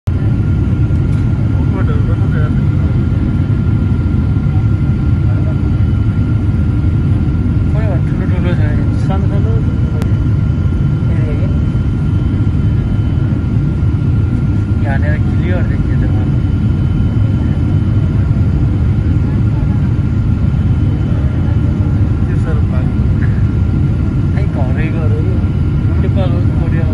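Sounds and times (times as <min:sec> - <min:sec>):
faint voices: 0:00.1 - 0:26.9
jet engine roar: 0:00.1 - 0:26.9.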